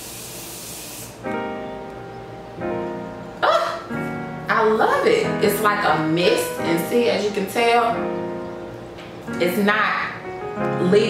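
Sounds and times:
spray bottle hissing: 0.0s - 1.2s
piano note: 1.2s - 11.0s.

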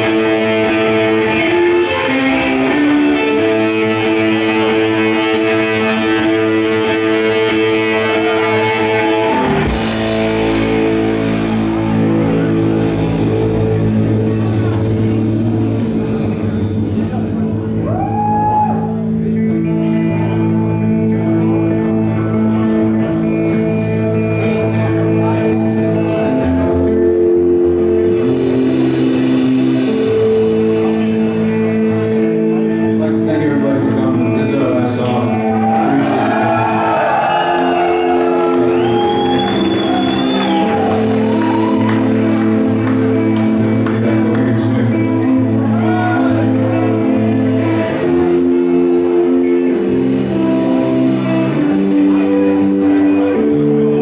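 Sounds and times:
live rock band drone: 0.0s - 54.0s.

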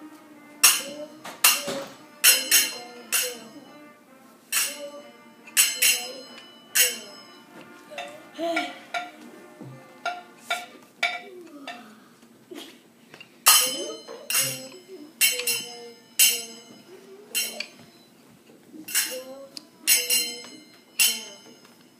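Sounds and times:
metal percussion clinking: 0.6s - 3.7s, 4.5s - 9.2s, 13.4s - 18.1s, 18.9s - 21.9s.

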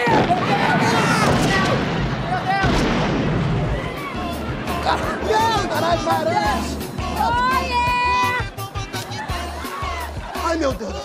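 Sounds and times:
people screaming and shouting: 0.0s - 2.8s, 3.5s - 11.0s
rumbling explosion blast: 0.0s - 7.2s.

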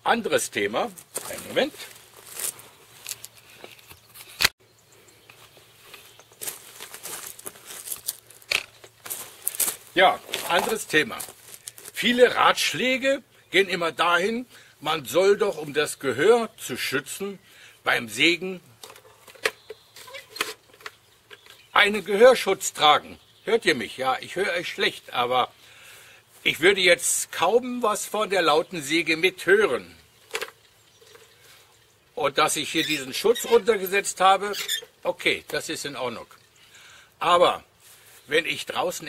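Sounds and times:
light handling rustle: 0.8s - 4.5s, 5.1s - 12.1s.

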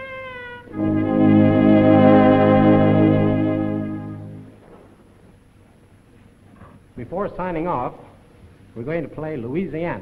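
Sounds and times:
dance orchestra playing: 0.7s - 4.6s.

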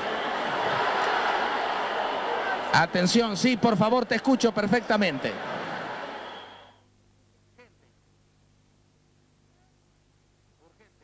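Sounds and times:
low steady hum: 2.7s - 11.0s.

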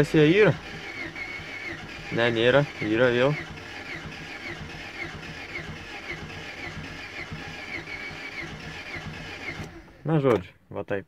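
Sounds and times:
engine cranking on starter: 0.0s - 10.5s.

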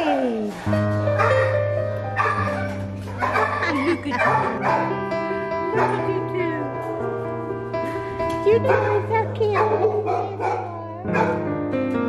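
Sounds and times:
soft guitar and keys music: 0.4s - 12.0s.

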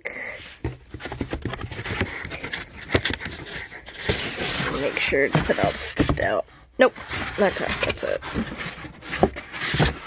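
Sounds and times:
plastic and cardboard crinkling: 0.1s - 10.0s
small clicks and scrapes: 0.6s - 6.4s.

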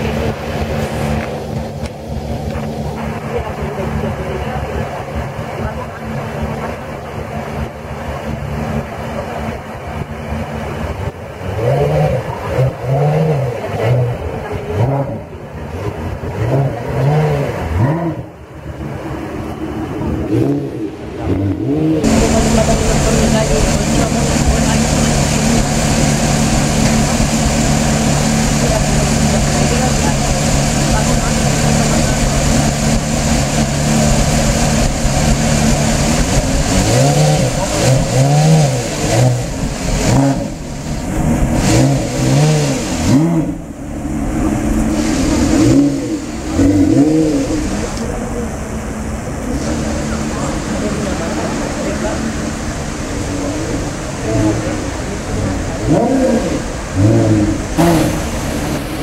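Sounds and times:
car engine idling: 0.0s - 59.0s
engine revving: 0.0s - 59.0s.

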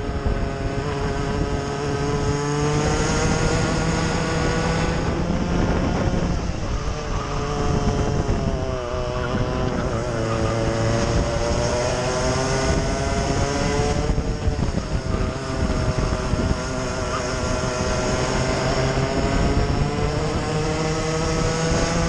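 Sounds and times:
racing kart engine: 0.0s - 22.0s
wind rumbling on microphone: 0.0s - 22.0s.

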